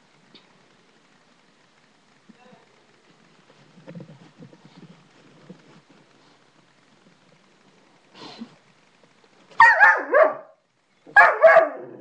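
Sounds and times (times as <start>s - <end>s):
dog barking: 9.6s - 12.0s.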